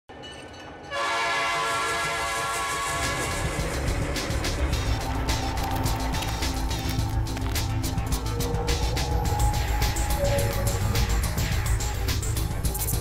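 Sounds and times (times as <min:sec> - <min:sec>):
train rumbling with clicks: 0:00.2 - 0:13.0
train horn blast: 0:00.9 - 0:05.2.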